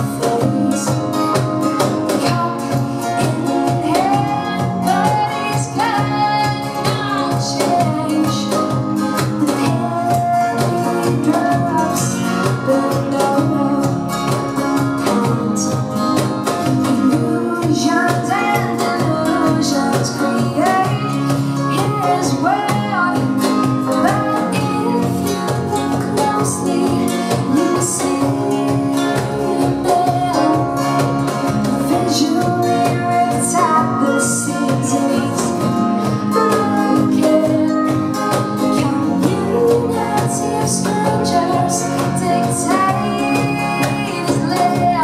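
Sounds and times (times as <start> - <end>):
acoustic guitar: 0.0 - 45.0
cajon steady beat: 0.0 - 45.0
electric guitar: 0.0 - 45.0
keyboard: 0.0 - 45.0
woman singing: 0.0 - 45.0.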